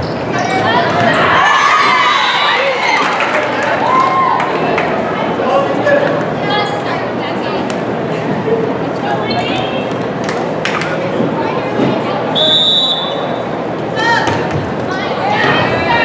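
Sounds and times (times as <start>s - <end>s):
voices echoing in gymnasium: 0.0s - 16.0s
referee's whistle: 12.4s - 13.3s.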